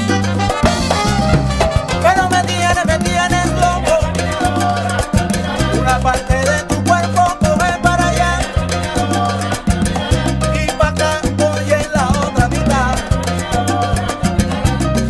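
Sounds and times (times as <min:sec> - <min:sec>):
salsa band playing: 0:00.0 - 0:15.0.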